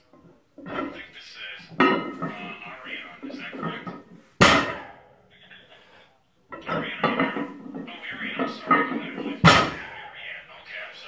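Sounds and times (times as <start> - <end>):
muffled talk from radio: 0.7 - 11.0
weight plates clinking on barbell: 1.7 - 5.0, 6.5 - 10.0.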